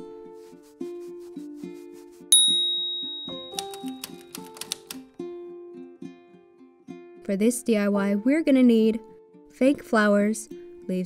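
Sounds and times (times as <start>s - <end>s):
light background music: 0.0s - 11.0s
bell-like ding: 2.4s - 3.6s.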